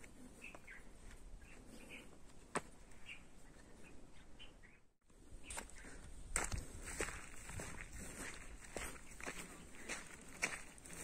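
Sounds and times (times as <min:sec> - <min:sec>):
footsteps through dry grass: 0:05.3 - 0:11.0.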